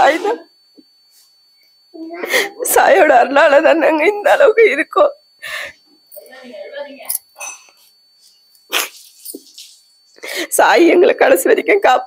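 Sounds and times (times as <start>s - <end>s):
woman crying: 2.0s - 5.6s.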